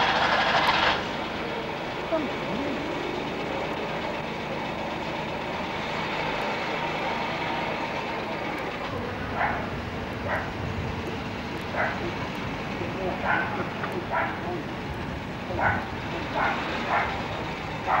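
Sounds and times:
car engine running: 0.0s - 18.0s
dog barking: 9.3s - 10.6s, 11.7s - 12.2s, 13.2s - 14.6s, 15.5s - 18.0s.

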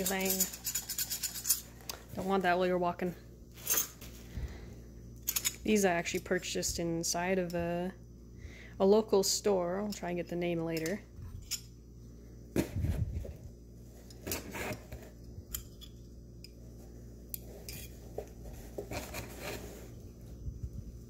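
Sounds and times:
metal cutlery clinking and scraping: 0.0s - 1.7s.

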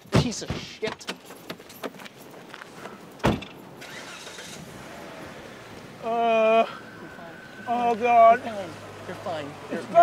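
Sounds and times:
car door slamming shut: 3.2s - 3.6s.

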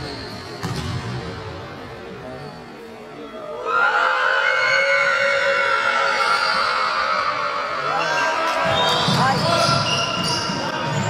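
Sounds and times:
sneakers squeaking: 0.0s - 1.4s, 2.3s - 2.9s, 8.4s - 11.0s.

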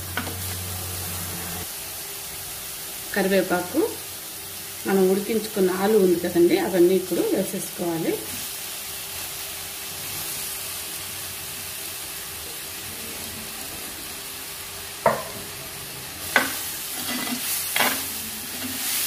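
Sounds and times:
paste sizzling in a pot: 0.0s - 19.0s.

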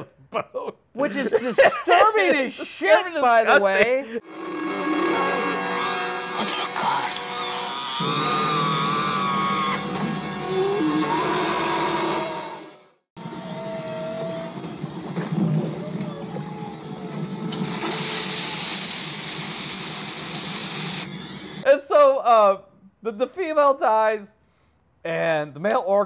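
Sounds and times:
hose spraying water: 17.5s - 21.4s.

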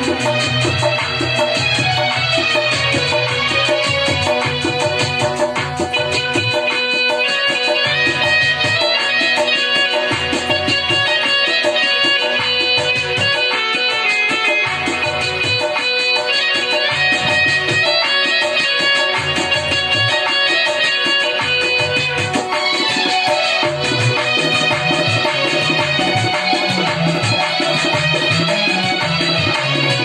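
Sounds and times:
harmonium: 0.0s - 30.0s
keyboard: 0.0s - 30.0s
tabla: 0.0s - 30.0s.

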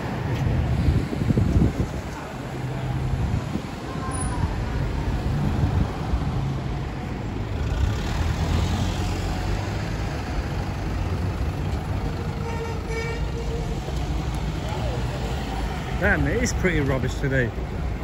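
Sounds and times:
road noise: 0.0s - 18.0s
vehicle engines idling and passing: 0.0s - 18.0s.

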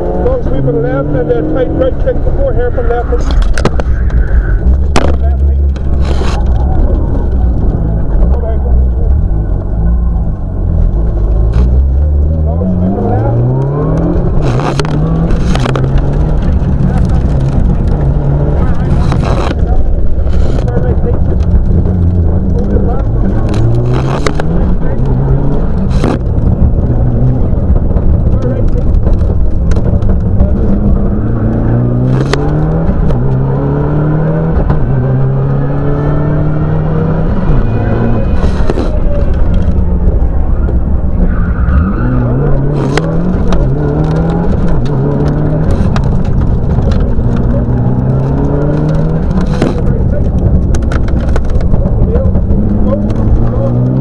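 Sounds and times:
car engine revving hard: 0.0s - 3.4s, 10.8s - 54.0s.

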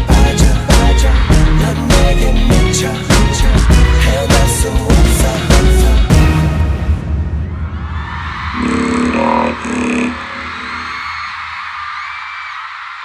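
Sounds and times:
music: 0.0s - 8.8s
concert audience screaming and cheering: 7.2s - 13.0s.

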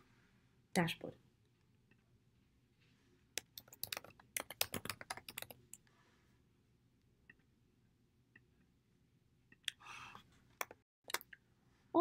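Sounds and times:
keyboard typing: 3.4s - 5.7s.

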